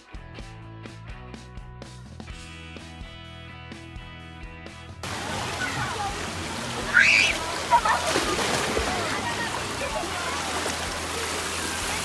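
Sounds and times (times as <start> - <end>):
splashing water: 5.0 - 12.0
faint voices of people and children: 5.1 - 12.0.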